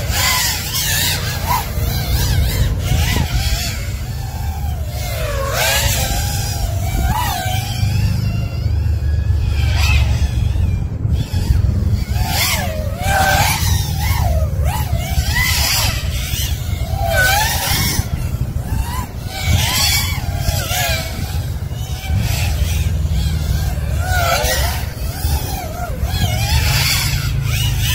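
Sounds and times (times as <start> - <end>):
drone motors whining: 0.0 - 27.9
steady low rumble: 0.0 - 27.9.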